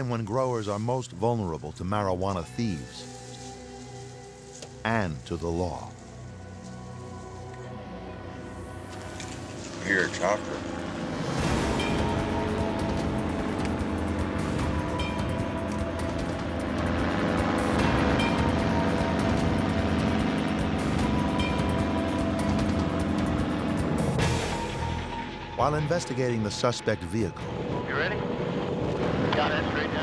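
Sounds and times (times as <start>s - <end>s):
background music: 0.0s - 30.0s
helicopter rotor chop: 8.7s - 30.0s.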